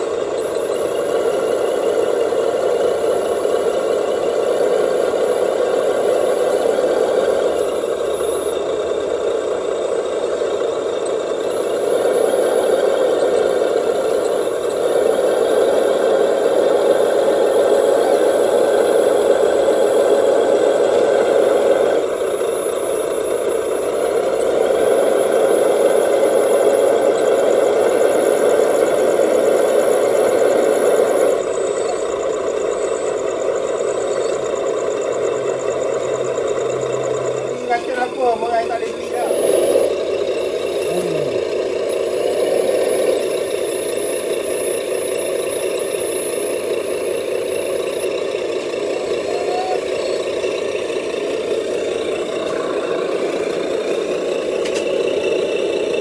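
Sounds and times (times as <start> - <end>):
diesel engine idle through small speaker: 0.0 - 56.0.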